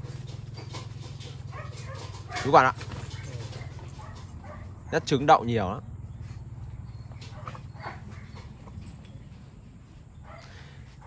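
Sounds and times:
dogs moving on dry dirt: 0:00.0 - 0:11.0
dogs sniffing: 0:00.0 - 0:11.0.

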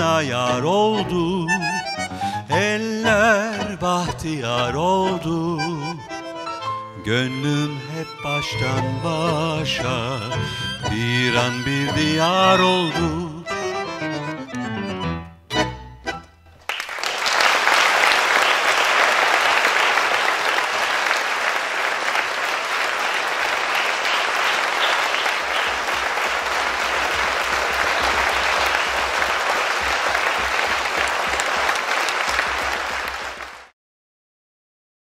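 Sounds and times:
audience applause: 0:16.6 - 0:33.7.

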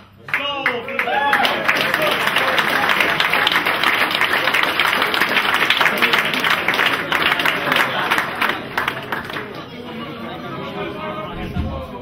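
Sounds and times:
audience applauding: 0:00.2 - 0:09.8.

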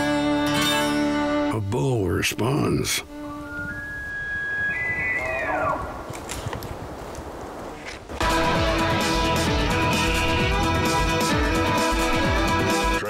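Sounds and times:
loud guitar music: 0:00.0 - 0:03.5, 0:08.2 - 0:13.0
elk bugle whistle: 0:03.1 - 0:05.9.

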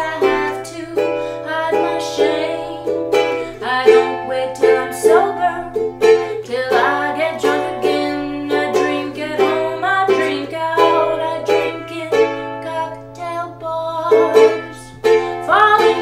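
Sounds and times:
ukulele strumming chords: 0:00.0 - 0:16.0.

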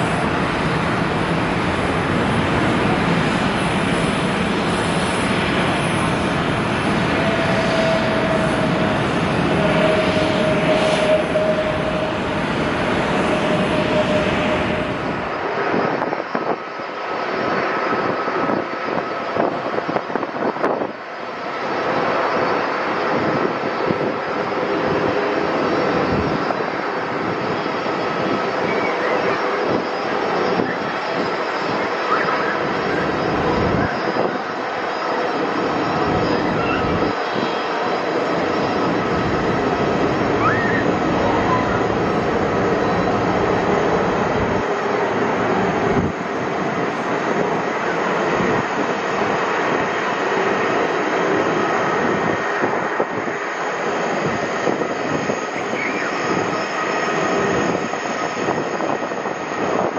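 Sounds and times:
jet engine whine on approach: 0:00.0 - 0:59.9
jet engines on runway: 0:00.0 - 0:59.9.

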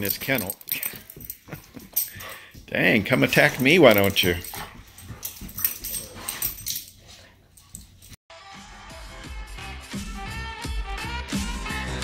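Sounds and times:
light clicks and jingles: 0:00.0 - 0:08.2
dogs play-fighting: 0:00.3 - 0:08.2
upbeat funky background music: 0:08.5 - 0:12.0.

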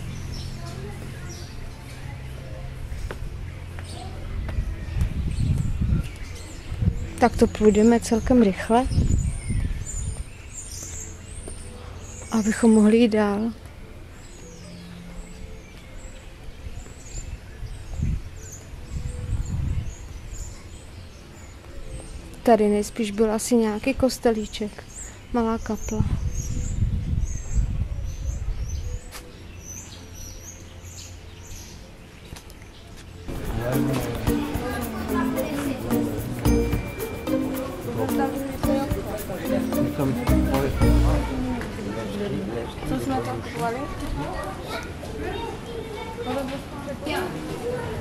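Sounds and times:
small birds chirping: 0:00.0 - 0:41.6.

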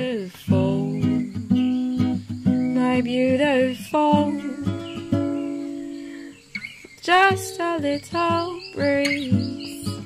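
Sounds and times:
acoustic guitar chord ringing: 0:00.1 - 0:10.0.

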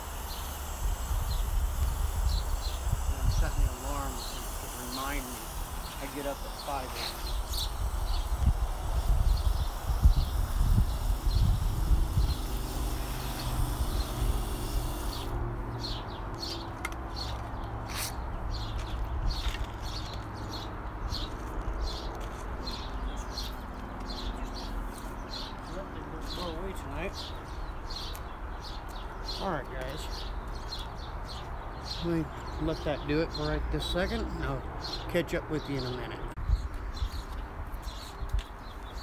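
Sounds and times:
hose nozzle spraying water: 0:00.0 - 0:15.4
birds chirping: 0:00.0 - 0:39.0.

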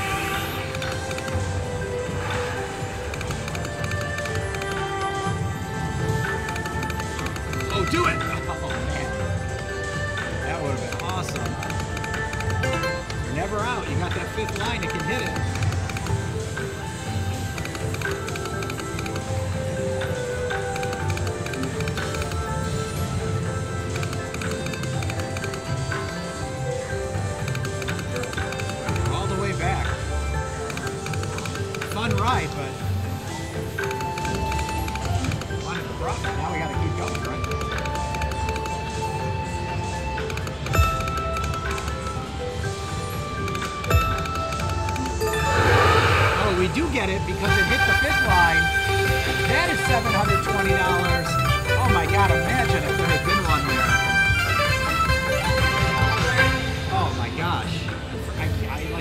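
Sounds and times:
slot machine electronic music: 0:00.0 - 0:59.0
rising electronic sweeps: 0:45.4 - 0:46.8.

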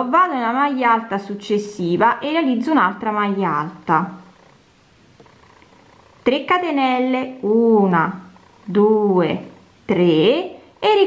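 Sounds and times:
person speaking: 0:00.0 - 0:04.3, 0:06.3 - 0:11.0.

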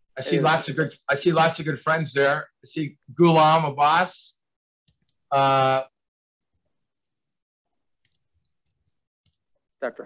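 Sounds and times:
man speaking: 0:00.1 - 0:04.4.

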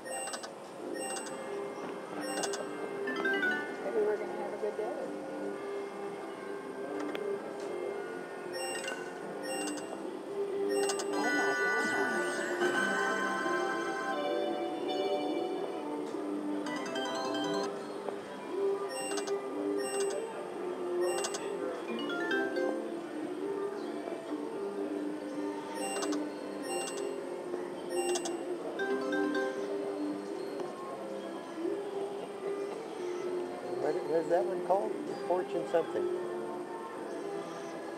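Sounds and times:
slot machine electronic game music: 0:00.0 - 0:01.4, 0:02.2 - 0:03.7, 0:08.6 - 0:09.9, 0:10.7 - 0:15.8, 0:16.7 - 0:17.7, 0:25.8 - 0:27.2, 0:27.9 - 0:29.7.

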